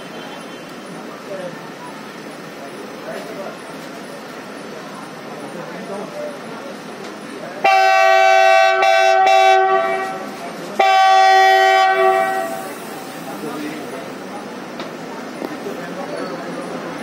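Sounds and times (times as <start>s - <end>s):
locomotive air horn blasts: 7.6s - 12.8s.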